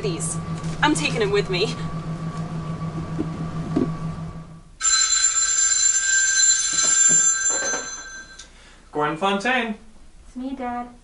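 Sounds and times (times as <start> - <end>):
telephone ringing: 4.8 - 8.6.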